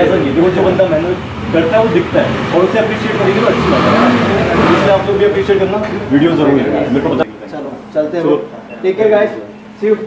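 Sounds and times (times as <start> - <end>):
men talking in a group: 0.0 - 10.0.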